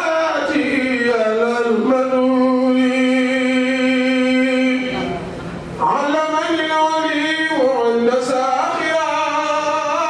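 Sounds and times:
man singing: 0.0s - 5.0s, 5.8s - 10.0s.

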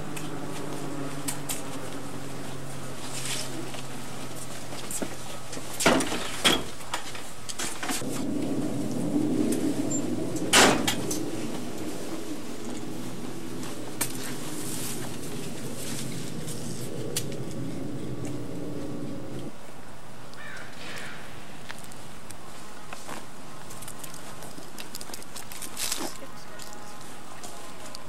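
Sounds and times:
wooden gate banging: 9.7s - 11.9s.

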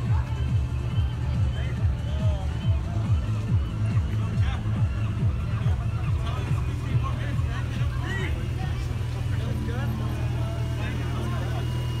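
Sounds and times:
car engine idling: 0.0s - 12.0s
people talking: 0.0s - 12.0s.

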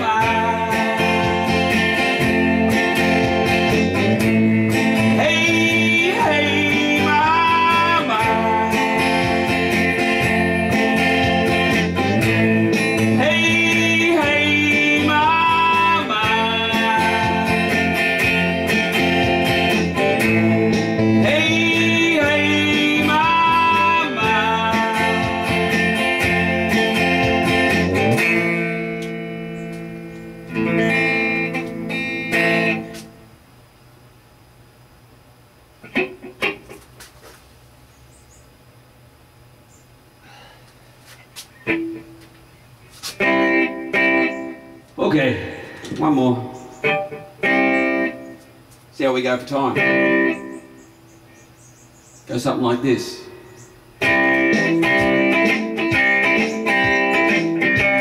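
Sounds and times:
man singing: 0.0s - 1.5s, 5.0s - 10.1s, 12.2s - 18.0s, 21.0s - 25.8s
electric guitar strumming: 0.0s - 33.6s, 35.8s - 37.4s, 41.4s - 51.2s, 52.3s - 58.0s.

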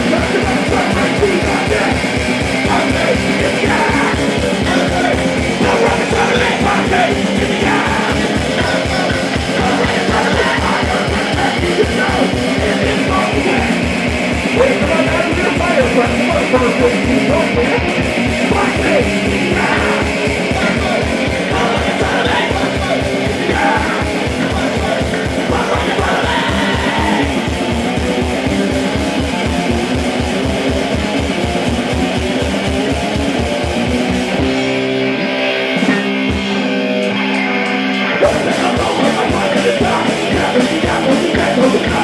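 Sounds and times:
driving kick drum: 0.0s - 34.9s, 35.8s - 37.2s, 38.2s - 42.0s
electric guitars: 0.0s - 42.0s
live rock band playing: 0.0s - 42.0s.

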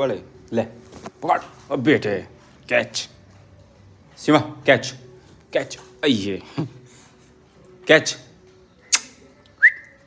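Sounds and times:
person whistling rising pitch: 9.6s - 10.0s.

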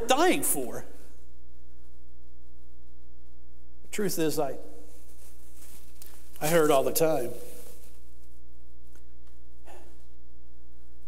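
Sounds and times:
electrical mains hum: 0.0s - 11.0s
faint soft noise: 0.6s - 11.0s.

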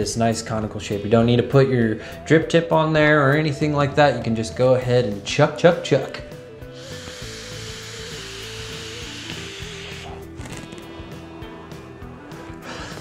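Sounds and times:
airy hiss of air drawn through atomizer: 6.6s - 11.3s, 12.6s - 13.0s
soft exhale: 6.7s - 11.3s.

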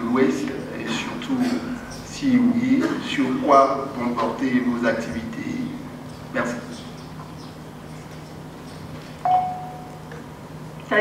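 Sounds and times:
low electrical hum: 0.0s - 11.0s
chime tone: 9.2s - 10.0s.

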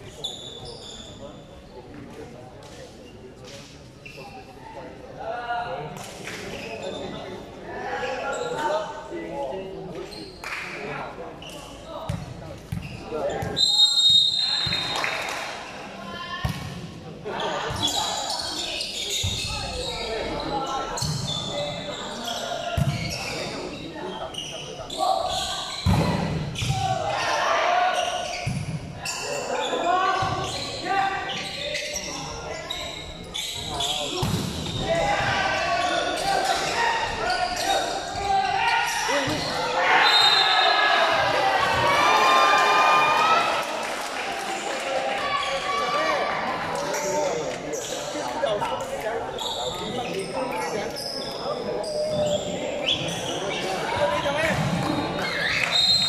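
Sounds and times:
people shouting and cheering: 34.8s - 47.5s.

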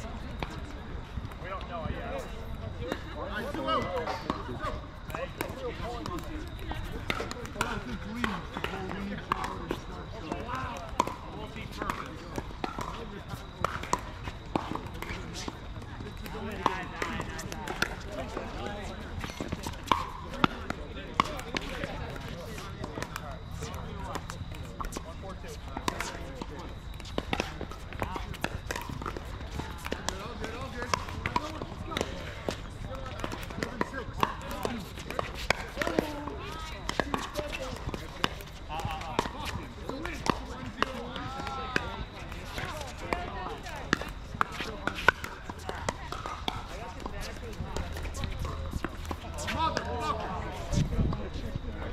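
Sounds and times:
ball bouncing on court: 2.8s - 51.6s.

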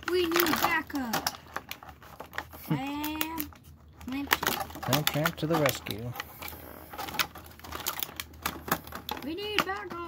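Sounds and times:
knife cutting plastic packaging: 0.0s - 10.0s.

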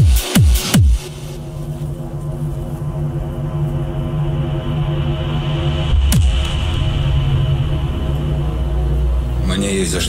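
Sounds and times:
low synth drone: 1.0s - 10.0s.

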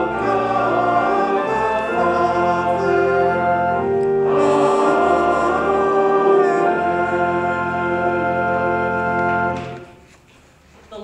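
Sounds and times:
choir and congregation singing: 0.0s - 10.0s
organ chords: 0.0s - 10.1s.

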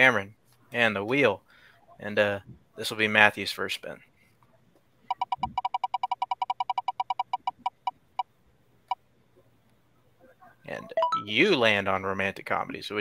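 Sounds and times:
spinning wheel ticking: 5.1s - 7.9s.

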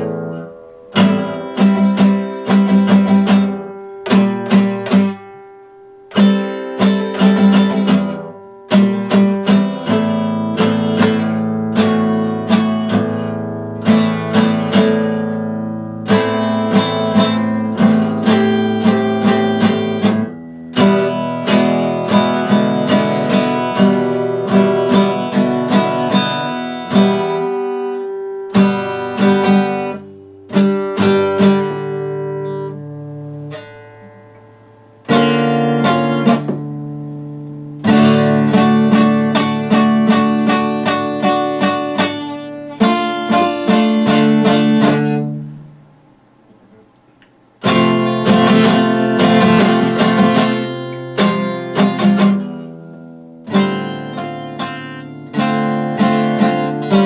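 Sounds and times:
acoustic guitar strumming: 0.0s - 57.0s.

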